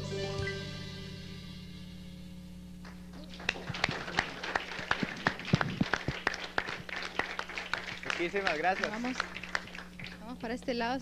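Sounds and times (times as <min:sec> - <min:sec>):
song final chords: 0:00.0 - 0:02.4
steady low hum: 0:00.0 - 0:11.0
audience clapping: 0:02.8 - 0:10.4.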